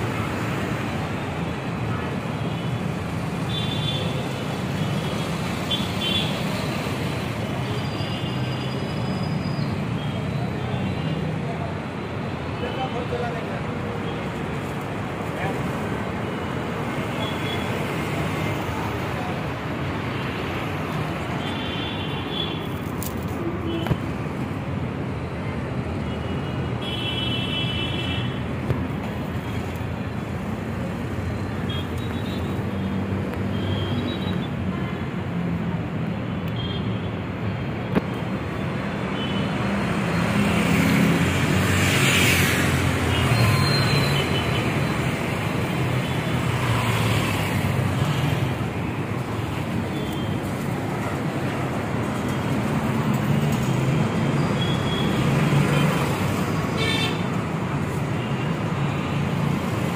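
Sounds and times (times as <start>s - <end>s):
road traffic noise: 0.0s - 59.9s.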